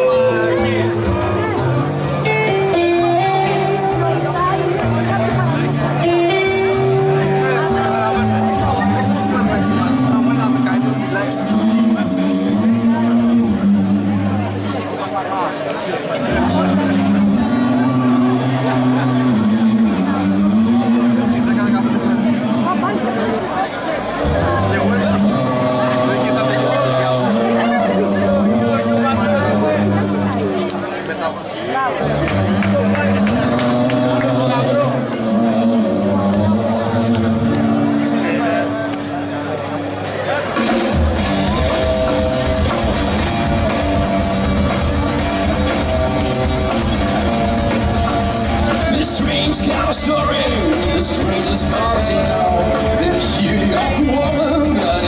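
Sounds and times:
live rock band playing: 0.0s - 15.0s, 16.2s - 23.4s, 24.1s - 31.0s, 32.2s - 55.0s
sustained electric guitar notes: 0.0s - 15.1s, 16.1s - 31.3s, 32.0s - 55.0s.

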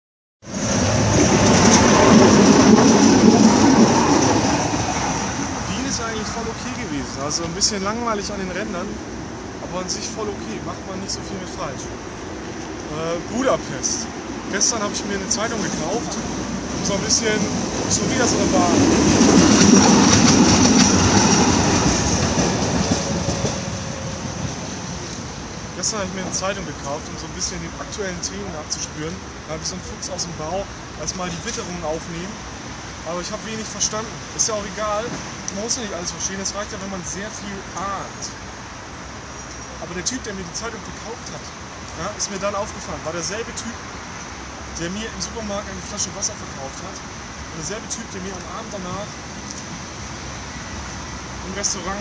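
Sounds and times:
tram rumbling past on rails: 0.4s - 52.0s.

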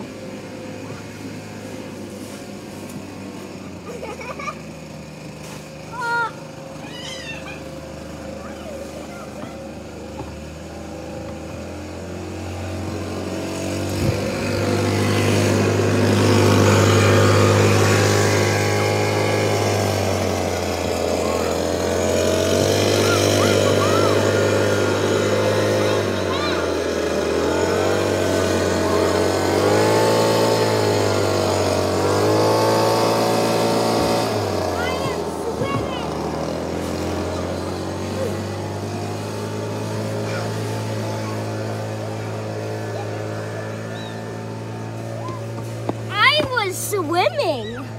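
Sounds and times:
leaf blower running: 0.0s - 47.9s.

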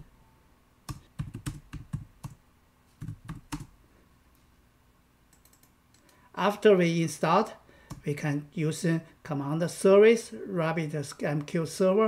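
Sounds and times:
typing on computer keyboard: 0.9s - 2.4s, 3.0s - 3.7s, 5.3s - 6.1s.

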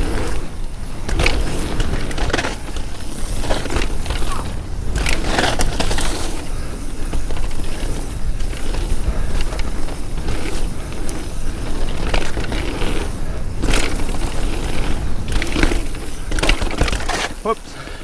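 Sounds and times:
bike knocking and rattling: 0.0s - 18.0s
bike tyres on dirt trail: 0.0s - 18.0s
wind rumble on microphone: 0.0s - 18.0s.

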